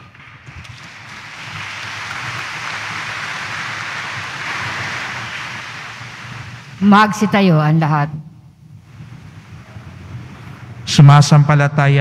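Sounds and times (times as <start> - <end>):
congregation shuffling: 0.0 - 7.2.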